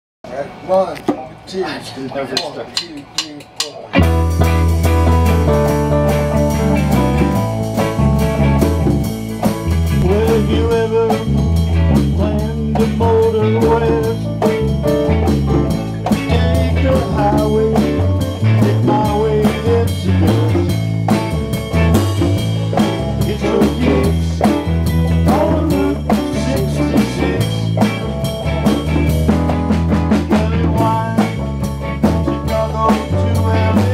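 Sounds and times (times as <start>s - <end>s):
keyboards: 2.2s - 33.9s
live blues band: 3.6s - 33.9s
electric guitar: 3.9s - 33.9s.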